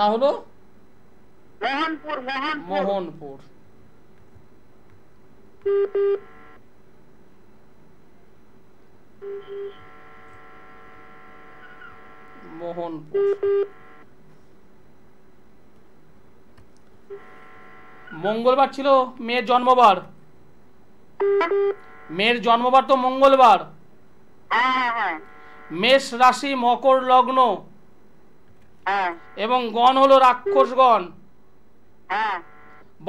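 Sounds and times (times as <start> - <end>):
electronic telephone beeps: 5.6 - 6.6, 9.2 - 12.5, 13.1 - 14.0, 21.2 - 22.2
phone line hiss: 5.6 - 6.6, 9.2 - 14.1, 17.1 - 18.3, 21.2 - 22.5, 24.7 - 26.2, 28.9 - 30.8
faint tone: 9.2 - 13.9.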